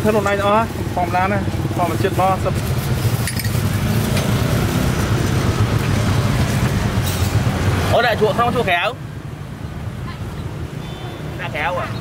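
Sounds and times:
traffic engine rumble: 0.0s - 12.0s.

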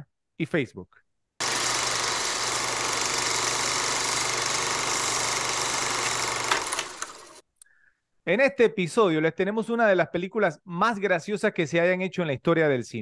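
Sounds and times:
film projector whirring clatter: 1.4s - 7.4s.

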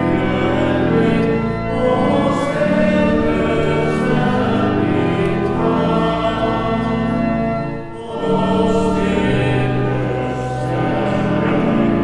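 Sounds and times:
church pipe organ: 0.0s - 12.0s
congregation singing a hymn: 0.0s - 12.0s.

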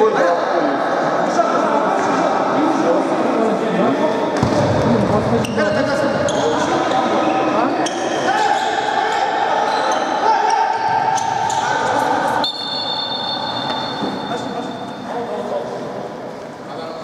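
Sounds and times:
voices echoing in sports hall: 0.0s - 17.0s
shoe squeaks on court: 5.4s - 8.8s, 11.1s - 15.0s.

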